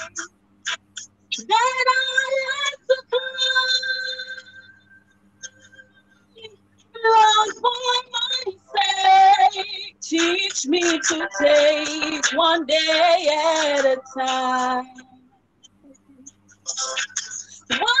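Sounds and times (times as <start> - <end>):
woman singing gospel song: 1.3 - 4.6, 7.0 - 15.2, 17.3 - 18.0.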